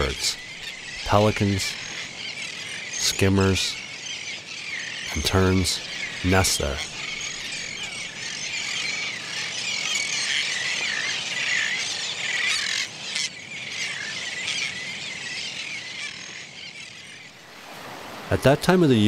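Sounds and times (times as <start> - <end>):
terns calling: 0.0 - 19.0.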